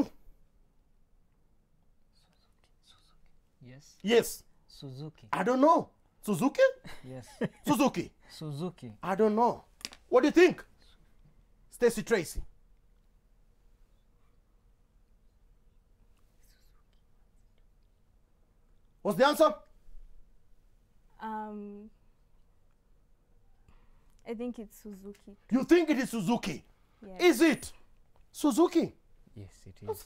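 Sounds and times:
people whispering: 2.1 - 4.0, 16.2 - 17.8.

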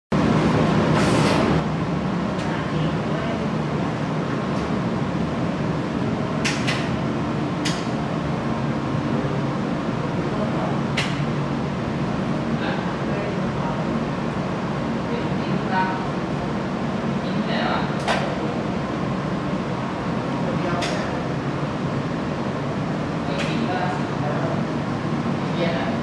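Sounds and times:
low room hum: 0.2 - 26.0.

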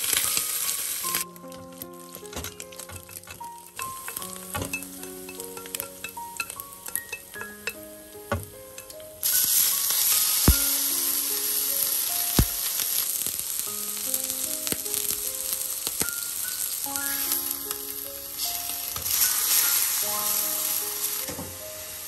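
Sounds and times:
soft background music: 0.0 - 22.0
steak sizzling in a frying pan: 0.0 - 22.0
fat spattering pops: 10.4 - 10.9, 12.4 - 12.8.

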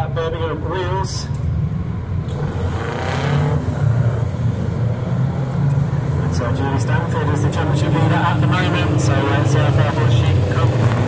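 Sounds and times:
stock car engines droning: 0.0 - 11.0.

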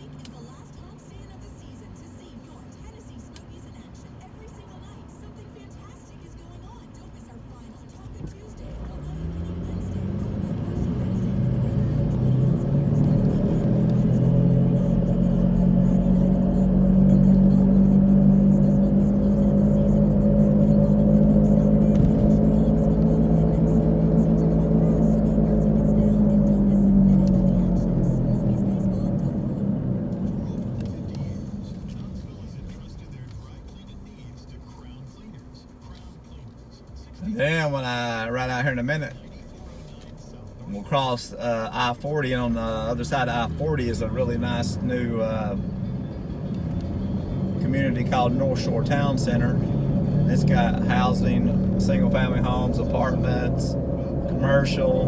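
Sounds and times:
car engine: 0.0 - 55.0
road noise inside car: 0.0 - 55.0.

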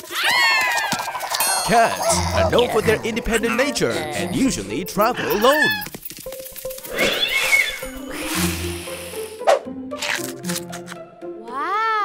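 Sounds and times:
light background music: 1.7 - 12.0.

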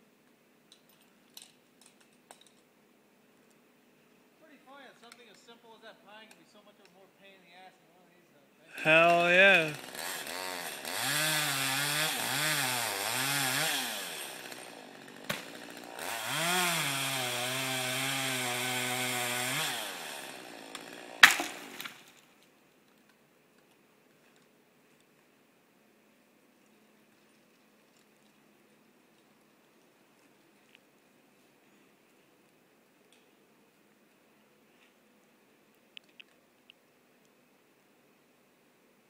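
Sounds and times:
chainsaw revving and cutting: 8.8 - 21.8.

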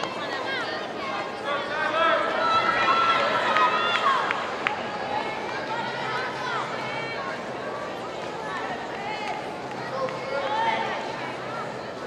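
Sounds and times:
crowd talking and calling out: 0.0 - 12.0.

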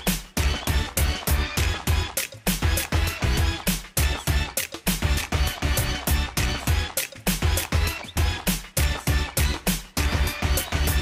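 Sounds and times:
background music with heavy beat: 0.0 - 11.0.

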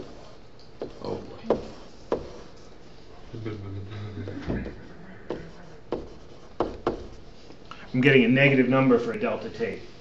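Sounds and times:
stylus tapping tablet screen: 0.0 - 2.5, 4.3 - 7.3.

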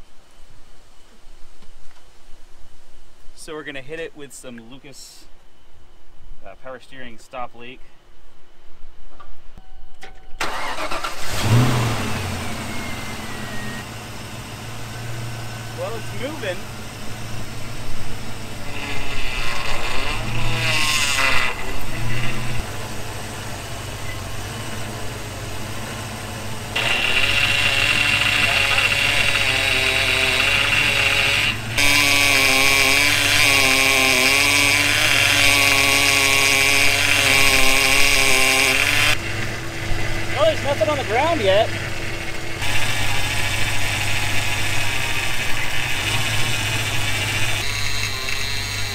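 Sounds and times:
power steering pump whining: 10.1 - 48.9
car engine idling: 10.4 - 18.7, 21.8 - 31.9, 38.8 - 48.3.

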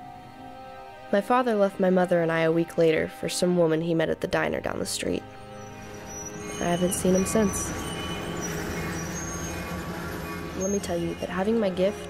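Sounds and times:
freight train rumbling past: 5.4 - 12.0.

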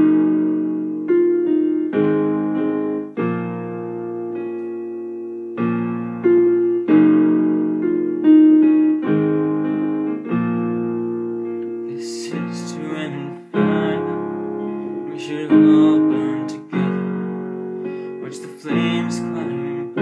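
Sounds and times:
digital piano slow sustained chords: 0.0 - 20.0.

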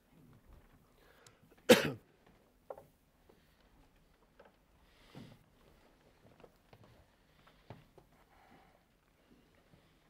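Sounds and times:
person coughing: 1.7 - 2.0.

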